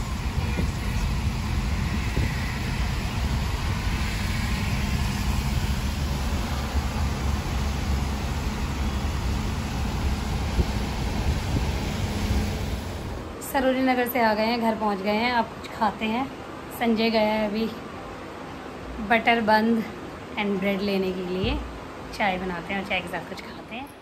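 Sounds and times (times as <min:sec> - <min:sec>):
engine and tyre rumble: 0:00.0 - 0:13.4
tyres hissing on wet road: 0:00.0 - 0:13.4.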